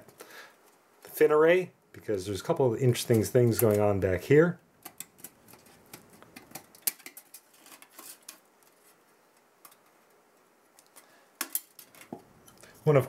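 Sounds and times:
wire clips clicking on metal fins: 4.8 - 8.4.

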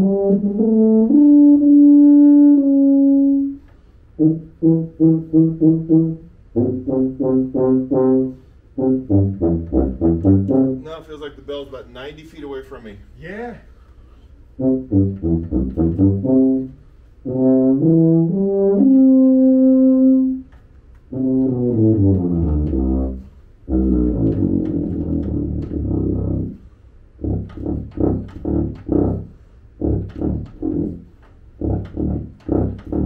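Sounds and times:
solo tuba playing: 0.0 - 11.1, 14.4 - 33.0.

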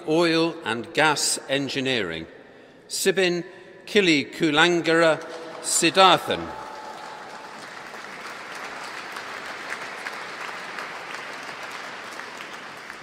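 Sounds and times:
audience applauding: 5.2 - 13.0.

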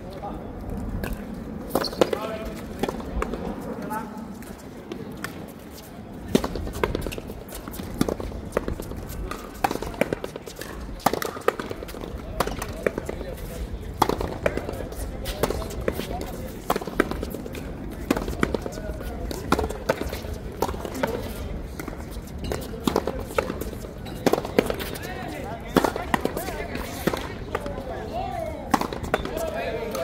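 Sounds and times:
voices talking: 9.0 - 30.0.

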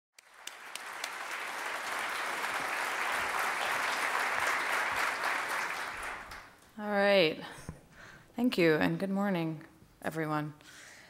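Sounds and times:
audience applause in a hall: 0.2 - 6.6.

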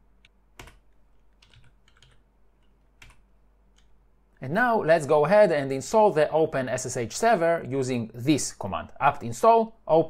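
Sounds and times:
keyboard typing: 0.2 - 4.0.

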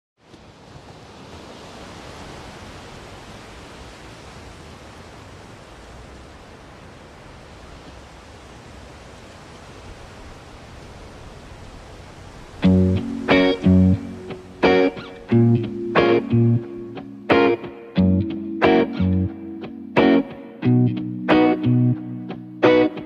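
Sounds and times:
outdoor ambience rushing noise: 0.2 - 23.0.

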